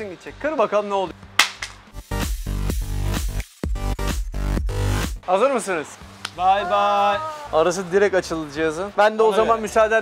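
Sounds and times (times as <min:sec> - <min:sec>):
phone cracking on concrete: 0:01.4 - 0:01.8.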